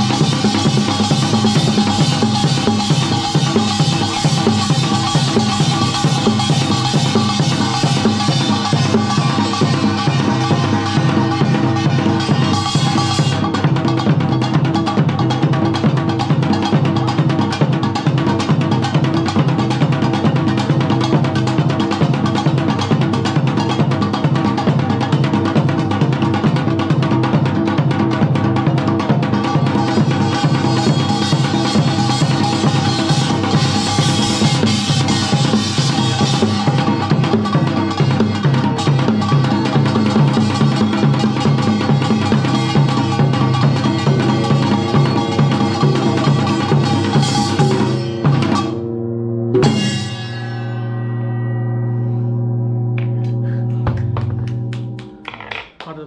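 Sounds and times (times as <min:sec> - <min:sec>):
barrel drum: 0:00.0 - 0:50.6, 0:52.9 - 0:55.8
percussion ensemble strikes: 0:00.0 - 0:51.0, 0:52.4 - 0:56.0
brass gongs clanging: 0:00.0 - 0:55.6
large gong ringing: 0:29.0 - 0:55.2.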